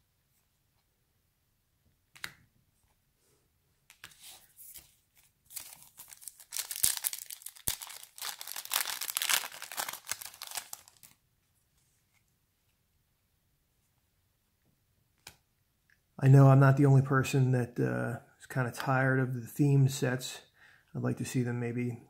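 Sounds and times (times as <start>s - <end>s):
foil wrapper tearing and crinkling: 5.5s - 11.2s.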